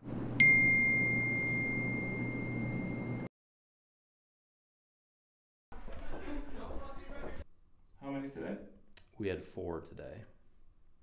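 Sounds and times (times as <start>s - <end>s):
bell-like ding: 0.4s - 3.3s.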